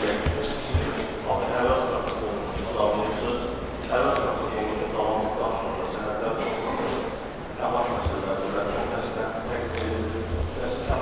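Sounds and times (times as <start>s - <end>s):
dull low thumps: 0.0s - 1.9s, 9.8s - 11.0s.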